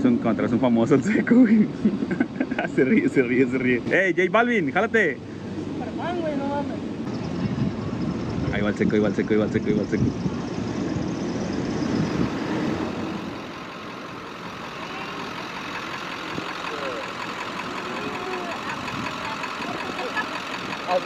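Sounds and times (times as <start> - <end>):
street traffic: 0.0 - 21.0
pickup engine idling: 6.8 - 21.0
faint voices: 12.4 - 21.0.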